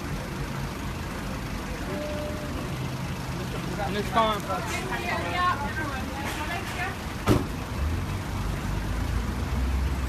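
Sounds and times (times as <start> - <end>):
voices: 0.0 - 7.2
vehicle engine rumble: 0.0 - 10.0.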